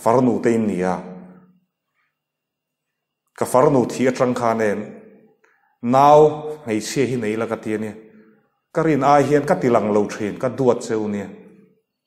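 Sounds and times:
man speaking into a microphone: 0.0 - 1.4, 3.4 - 5.2, 5.8 - 11.6.

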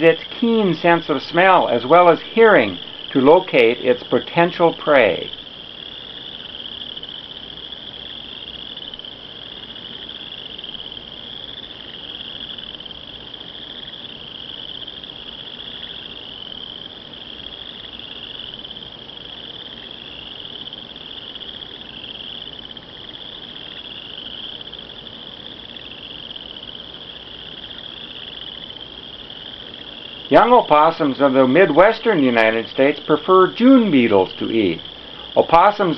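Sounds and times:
crickets chirping: 0.0 - 35.9.

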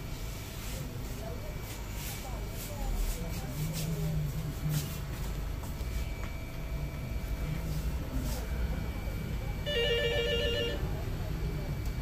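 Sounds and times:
low background hum: 0.0 - 12.0
telephone ringing: 9.6 - 11.0.

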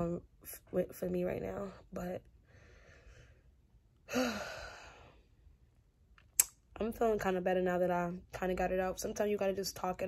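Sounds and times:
woman sighing: 4.0 - 5.1.

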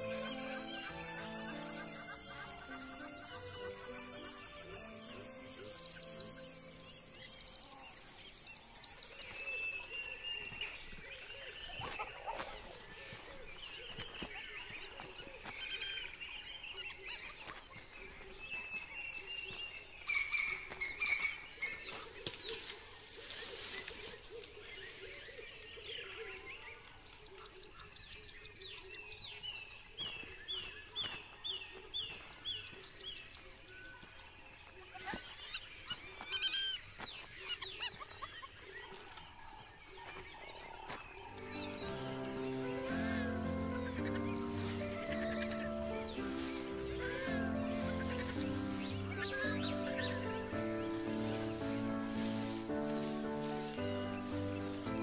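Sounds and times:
instrumental background music: 0.0 - 7.4, 41.3 - 55.0
faint outdoor ambience: 0.0 - 55.0
wild birds calling: 0.0 - 55.0.

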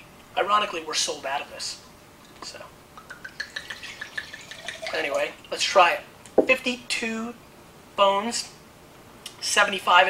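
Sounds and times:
wine pouring into a glass: 3.0 - 5.6.

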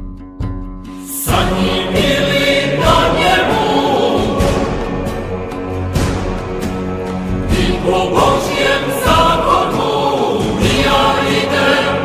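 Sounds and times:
choir singing sustained notes: 1.1 - 12.0.

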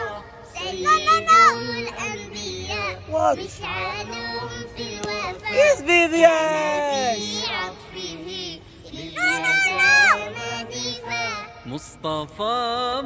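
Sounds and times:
child singing: 0.0 - 5.9, 6.6 - 11.8.

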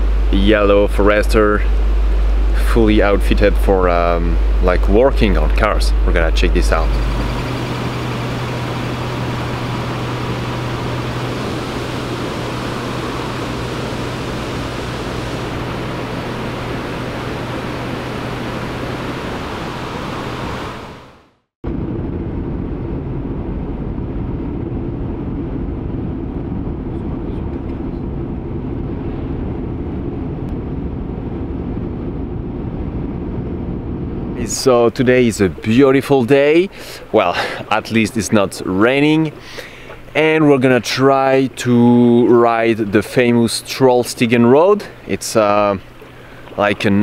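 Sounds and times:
rushing noise over low hum: 0.0 - 47.0
car driving on road: 6.7 - 34.4.

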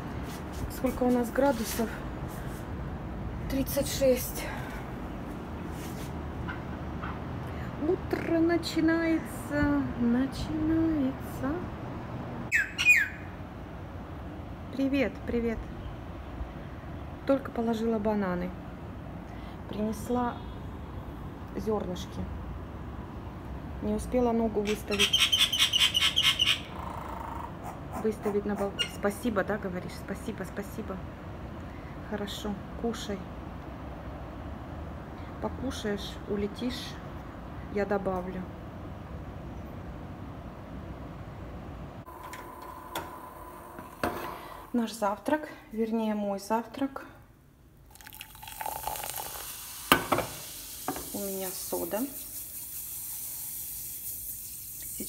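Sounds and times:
bird chirping: 12.5 - 13.3, 24.7 - 27.3
baking soda fizzing: 47.9 - 55.0.

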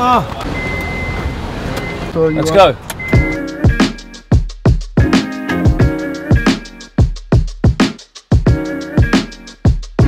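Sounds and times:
car warning beep: 0.4 - 3.5.

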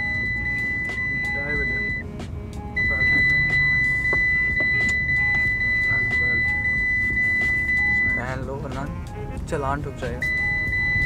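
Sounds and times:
high-pitched car warning beep: 0.0 - 8.5, 10.2 - 11.0
faint music: 0.0 - 11.0.

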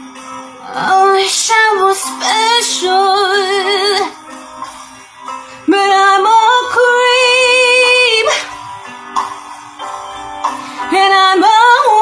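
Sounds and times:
backing track music: 0.0 - 12.0
woman singing: 0.6 - 4.2, 5.6 - 8.6, 10.8 - 12.0.

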